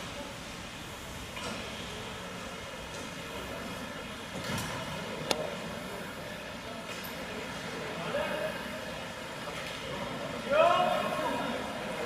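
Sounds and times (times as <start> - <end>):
ice rink hall hum and hiss: 0.0 - 12.0.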